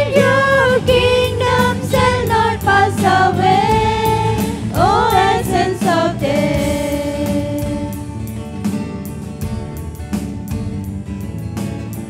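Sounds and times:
women singing worship song: 0:00.0 - 0:08.2
acoustic guitar: 0:00.0 - 0:12.0
bass guitar: 0:00.0 - 0:12.0.

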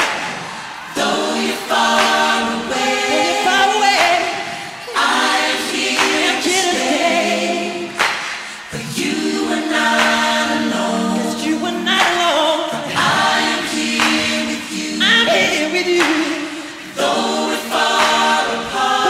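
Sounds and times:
choir singing in harmony: 0:00.0 - 0:19.0.

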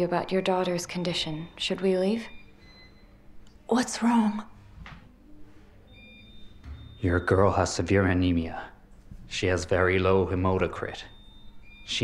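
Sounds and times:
low steady background tone: 0:00.0 - 0:12.0.

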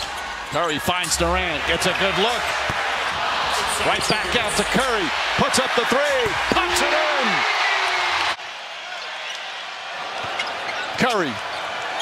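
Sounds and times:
arena crowd noise: 0:00.0 - 0:12.0
crowd cheering: 0:00.0 - 0:12.0.

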